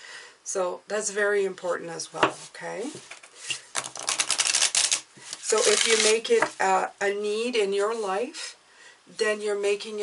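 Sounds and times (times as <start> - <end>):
cards being shuffled: 3.0 - 6.5.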